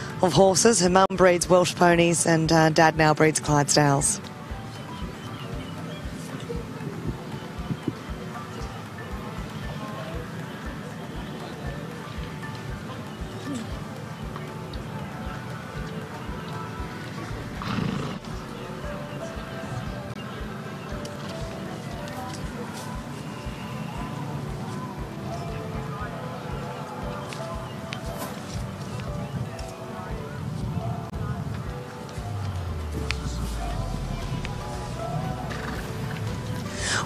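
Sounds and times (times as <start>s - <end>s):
background music with steady beat: 0.0s - 37.0s
soft hoofbeats on grass: 4.5s - 37.0s
horse snort: 17.6s - 18.3s.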